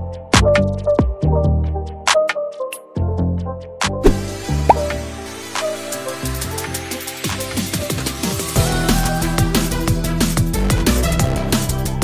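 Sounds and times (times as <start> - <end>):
electronic music with beat: 0.2 - 3.2, 3.8 - 12.0
short rising blip: 4.0 - 5.0.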